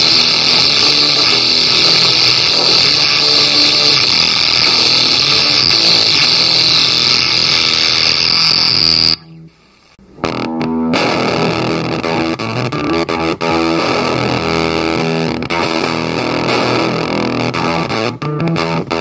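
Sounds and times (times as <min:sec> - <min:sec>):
high whine: 0:00.0 - 0:18.1
fuzz pedal feedback noise: 0:00.0 - 0:19.0.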